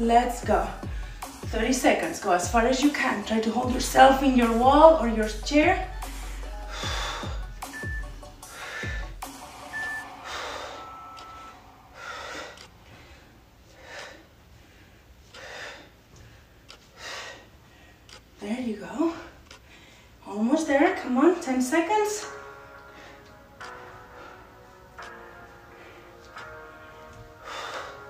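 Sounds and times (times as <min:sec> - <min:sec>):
faint background music: 0:00.0 - 0:15.8, 0:20.2 - 0:28.0.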